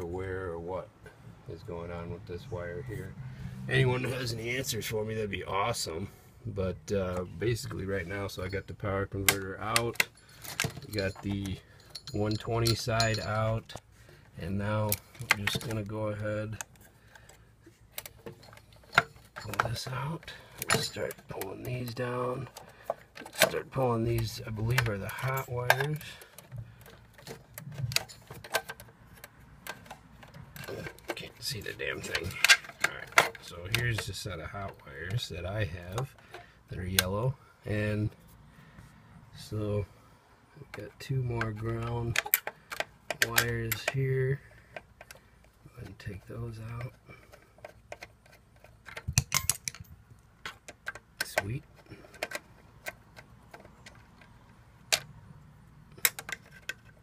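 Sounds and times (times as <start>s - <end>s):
screwdriver clicking on metal terminals: 9.2s - 13.8s, 46.3s - 55.1s, 55.9s - 57.0s
wires and connectors clicking: 14.6s - 37.2s, 40.6s - 57.0s.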